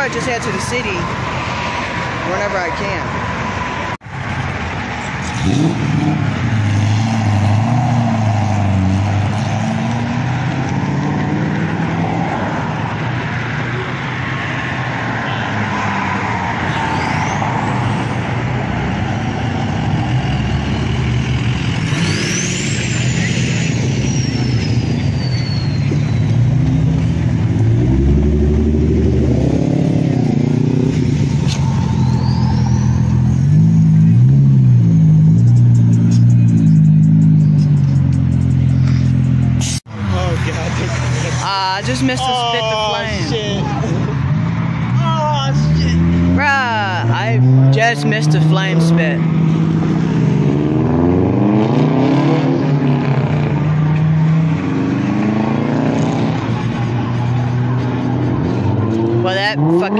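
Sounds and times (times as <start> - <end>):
car engines revving: 0.0 - 59.9.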